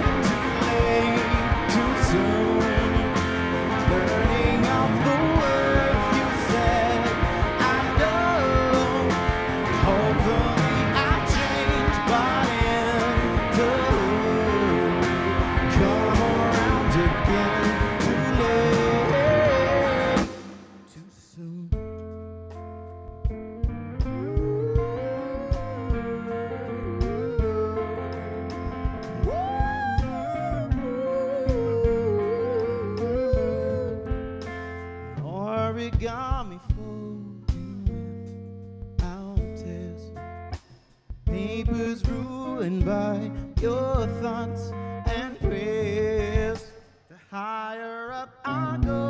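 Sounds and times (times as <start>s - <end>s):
live rock band playing: 0.0s - 21.0s, 21.8s - 40.7s, 41.3s - 46.7s.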